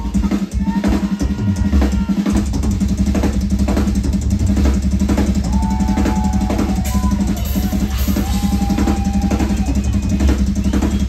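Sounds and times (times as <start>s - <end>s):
snare and cymbal hits: 0.0s - 11.0s.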